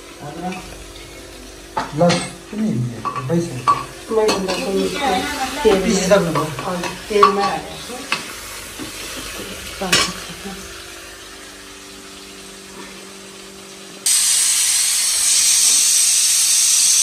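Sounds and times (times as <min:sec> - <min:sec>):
pressure cooker steam hissing: 0:01.0 - 0:12.0, 0:14.0 - 0:17.0.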